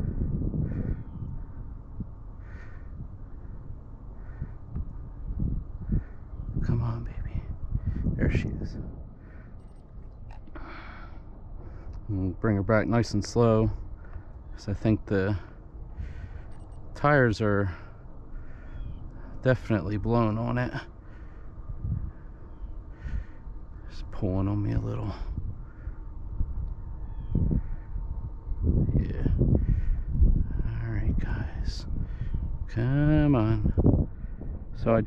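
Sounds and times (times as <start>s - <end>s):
steady low rumble: 0.0s - 35.0s
faint thin whine: 0.9s - 35.0s
soft breath: 9.2s - 12.0s, 15.4s - 16.9s.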